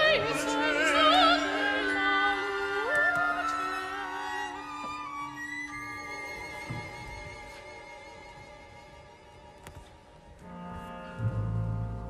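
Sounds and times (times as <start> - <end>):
quiet orchestral music: 0.0 - 12.0.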